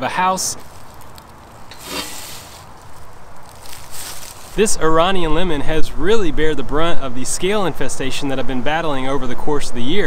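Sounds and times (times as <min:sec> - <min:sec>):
hand truck scraping and rustling: 0:00.4 - 0:04.8.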